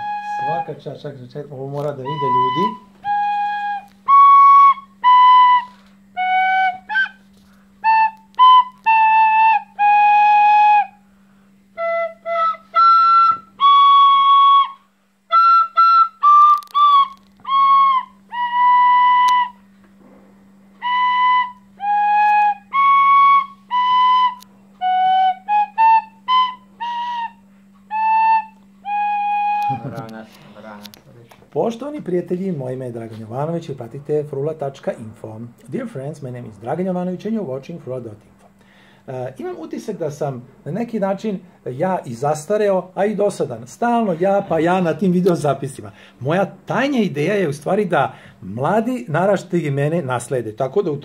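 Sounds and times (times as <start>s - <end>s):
wooden flute playing halting notes: 0.0s - 19.9s, 20.7s - 30.5s
faint low hum: 0.0s - 51.0s
man speaking: 0.3s - 2.8s, 29.8s - 38.4s, 39.1s - 51.0s.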